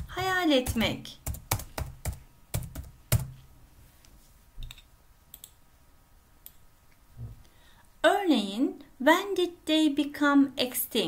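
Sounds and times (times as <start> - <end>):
keyboard typing: 0.0 - 3.4.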